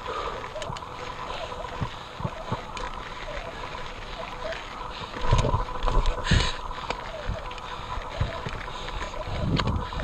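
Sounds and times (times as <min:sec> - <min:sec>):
bike rattle: 0:00.0 - 0:10.0
bike tyres on dirt and rock: 0:00.0 - 0:10.0
wind on microphone: 0:07.2 - 0:10.0.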